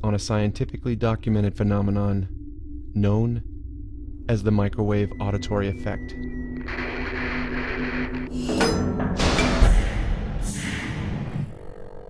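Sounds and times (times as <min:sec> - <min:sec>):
electronic drone hum: 0:00.0 - 0:12.0.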